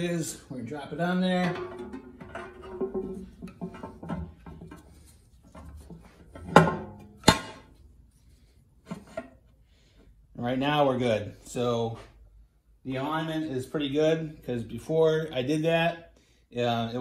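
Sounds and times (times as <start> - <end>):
metallic clanks: 1.3 - 7.8.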